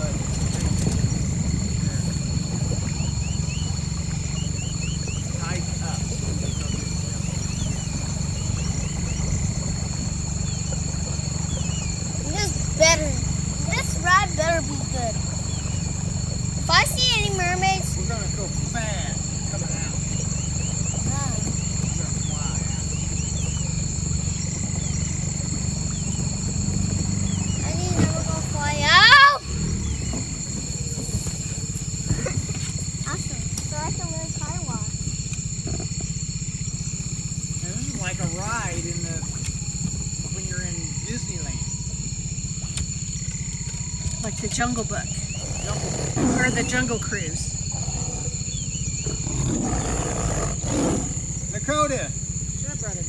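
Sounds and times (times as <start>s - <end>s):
outboard motor running: 0.0s - 53.0s.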